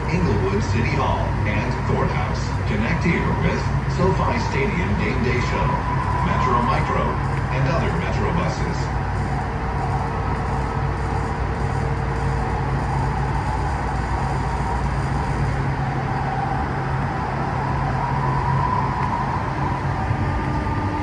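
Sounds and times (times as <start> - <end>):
faint motor whine: 0.0 - 21.0
wheels rumbling on rail: 0.0 - 21.0.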